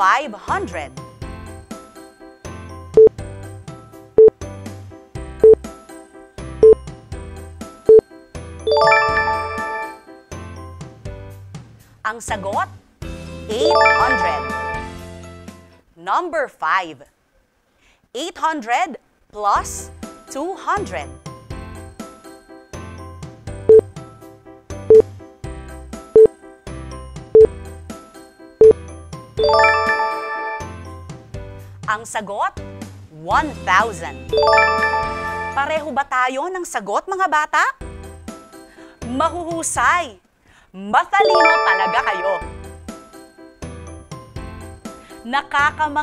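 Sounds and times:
background music: 0.0s - 15.9s, 19.5s - 40.2s, 41.0s - 46.0s
timer beep: 8.7s - 9.7s, 13.6s - 14.8s, 41.2s - 42.5s
rising chime notes: 8.7s - 10.0s, 13.6s - 14.9s, 29.4s - 30.8s, 34.4s - 35.6s, 41.2s - 42.6s.

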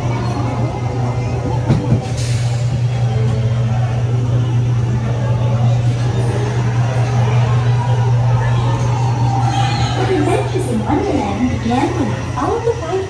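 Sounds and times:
ride vehicle humming on track: 0.0s - 13.0s.

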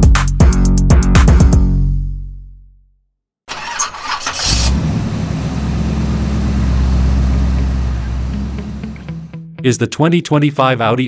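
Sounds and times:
car starter cranking: 3.5s - 9.3s
car engine idling: 3.5s - 9.4s.

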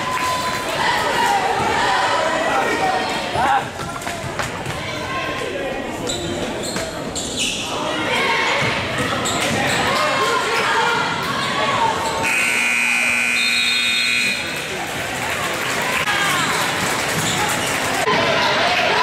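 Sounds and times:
crowd and player voices: 0.0s - 19.0s
scoreboard horn steady tone: 12.2s - 14.6s.

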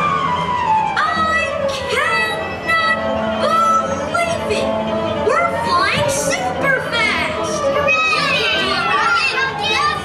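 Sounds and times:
children shouting and cheering: 5.4s - 10.0s.

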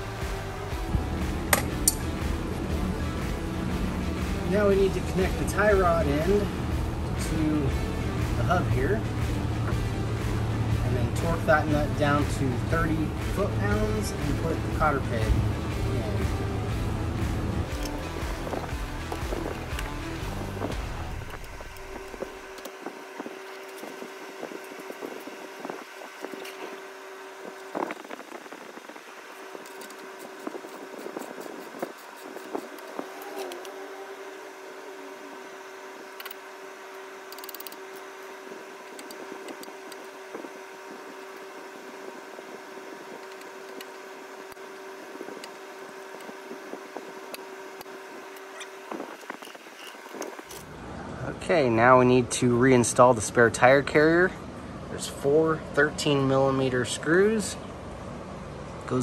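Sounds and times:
steady hum: 0.0s - 59.0s.

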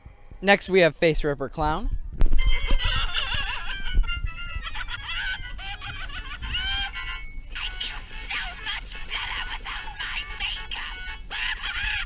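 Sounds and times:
low thuds: 1.2s - 7.6s.

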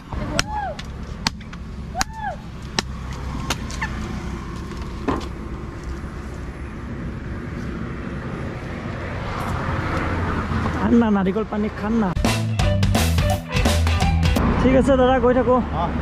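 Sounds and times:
machete chopping coconut: 0.0s - 3.8s
low road traffic rumble: 0.0s - 12.7s, 13.5s - 16.0s.

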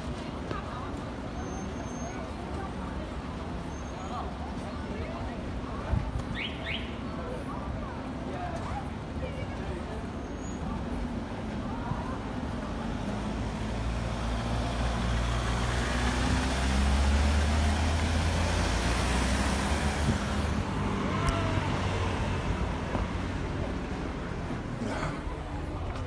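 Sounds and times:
street traffic: 0.0s - 26.0s
van passing: 12.8s - 26.0s.

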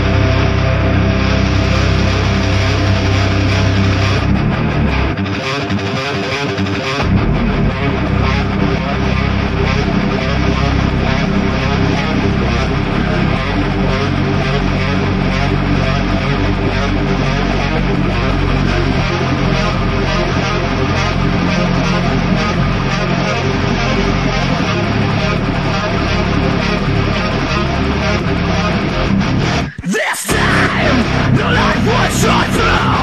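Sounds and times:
bass guitar: 0.0s - 33.0s
distorted electric guitars: 0.0s - 33.0s.

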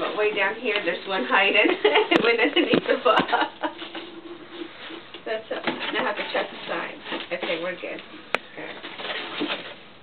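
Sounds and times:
paper filler rustling: 2.3s - 10.0s.

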